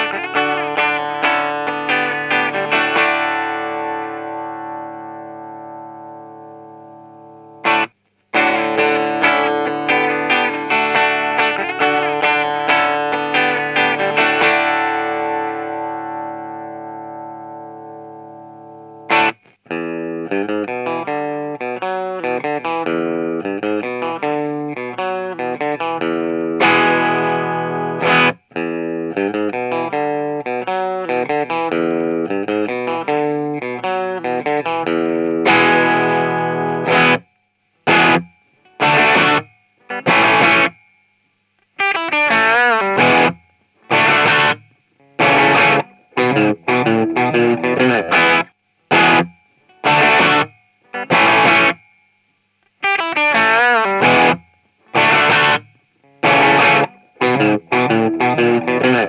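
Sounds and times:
distorted electric guitar: 0:00.0 - 0:59.0
faint high amplifier whine: 0:00.0 - 0:59.0.

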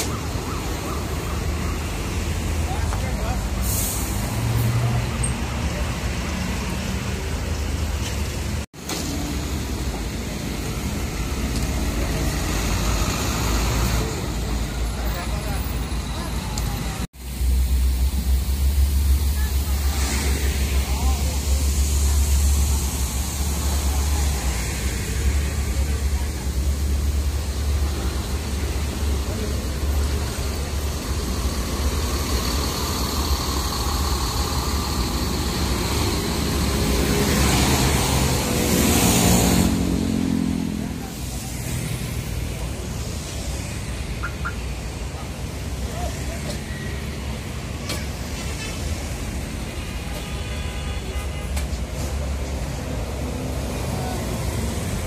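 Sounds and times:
diesel engines idling: 0:00.0 - 0:55.0
engine revving: 0:19.8 - 0:41.2.

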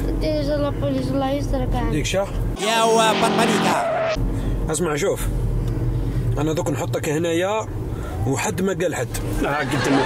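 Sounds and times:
car engine and road rumble: 0:00.0 - 0:10.0
men talking: 0:02.0 - 0:04.0, 0:06.3 - 0:10.0.

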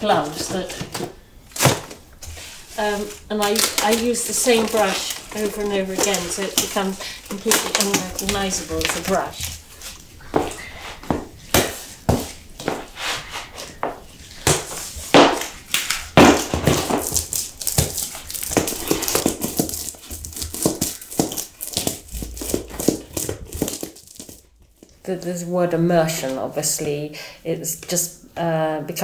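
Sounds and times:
sticky tar crackles and squelches: 0:01.6 - 0:24.5.

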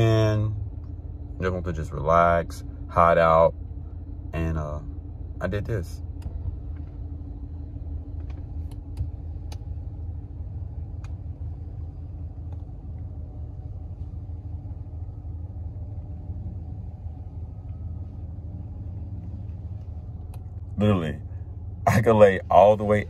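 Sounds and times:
faint steady hum: 0:00.0 - 0:23.0
low rumble inside truck cab: 0:00.0 - 0:23.0.

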